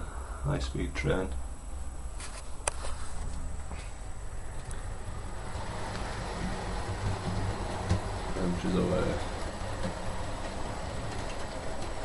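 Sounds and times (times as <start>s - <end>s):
model train motor hum: 5.2s - 12.0s
wheel rumble on track: 5.4s - 12.0s.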